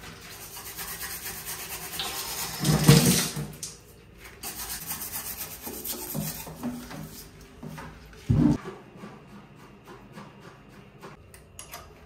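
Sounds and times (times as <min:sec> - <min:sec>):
scrub brush scrubbing metal: 0:00.0 - 0:03.2, 0:04.4 - 0:11.2.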